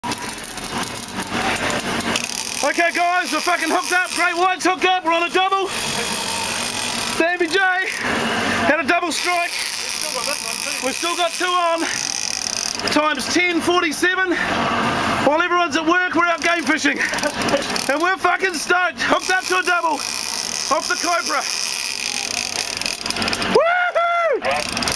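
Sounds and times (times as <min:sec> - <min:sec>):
boat engine running: 0:00.0 - 0:23.6, 0:24.5 - 0:24.9
busy rapid rattle: 0:16.2 - 0:18.2, 0:19.2 - 0:23.6, 0:24.5 - 0:24.9
person whooping shout: 0:23.5 - 0:24.7.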